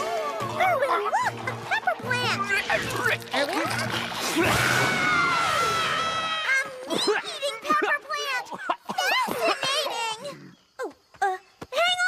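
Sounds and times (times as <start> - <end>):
background music: 0.0 - 6.4.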